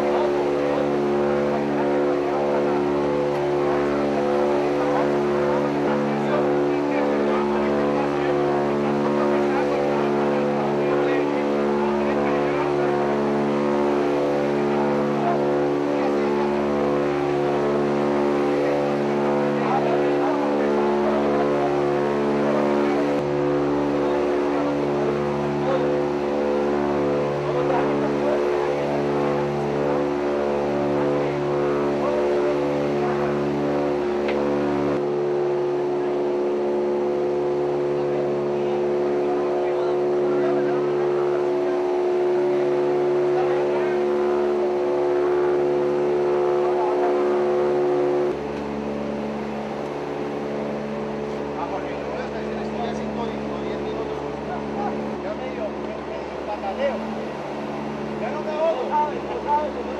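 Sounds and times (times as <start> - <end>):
helicopter engine and rotor drone: 0.0 - 59.9.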